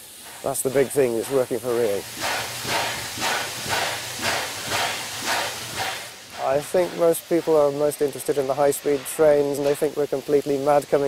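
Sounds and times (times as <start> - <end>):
steam blowing from cylinder cocks: 0.0 - 11.0
steam locomotive chuffing: 0.0 - 11.0.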